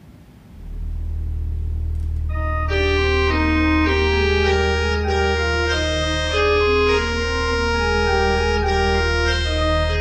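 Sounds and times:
church organ low pedal note: 0.5 - 10.0.

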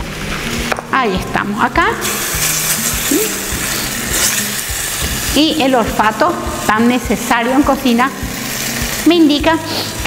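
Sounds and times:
sauce sizzling in frying pan: 0.0 - 10.0.

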